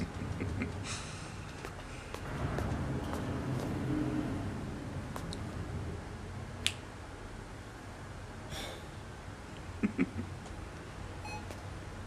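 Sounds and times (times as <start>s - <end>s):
low background hum: 0.0s - 12.0s
man snapping fingers: 6.6s - 6.9s.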